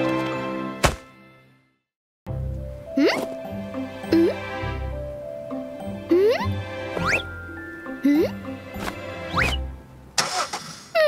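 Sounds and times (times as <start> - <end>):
background music: 0.0 - 10.5.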